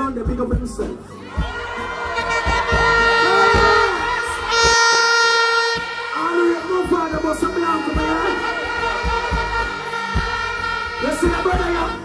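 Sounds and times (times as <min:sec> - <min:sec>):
music with thumping beat: 0:00.0 - 0:12.0
crowd shouting: 0:01.2 - 0:12.0
plastic horn blasts: 0:02.2 - 0:12.0.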